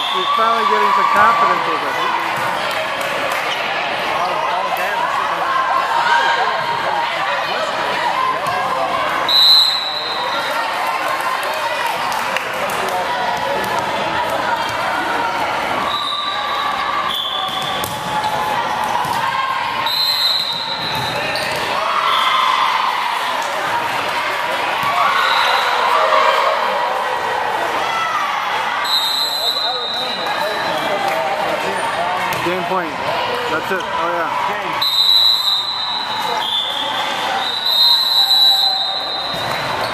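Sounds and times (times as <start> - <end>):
referee's whistle blasts: 0.0 - 1.5, 9.2 - 10.4, 15.9 - 17.8, 19.8 - 22.3, 28.8 - 30.9, 34.8 - 39.6
murmur of many voices: 0.0 - 22.0, 22.8 - 39.9
volleyballs struck and bouncing: 17.5 - 19.3.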